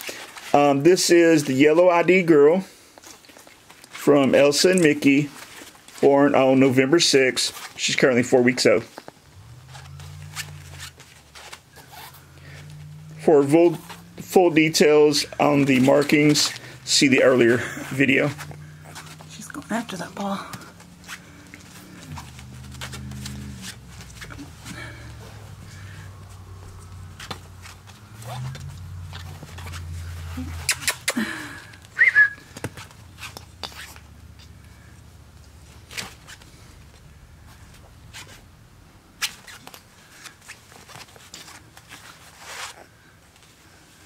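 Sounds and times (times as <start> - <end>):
low steady hum: 8.7 - 40.9
puppy mouthing plastic ball: 30.5 - 31.2.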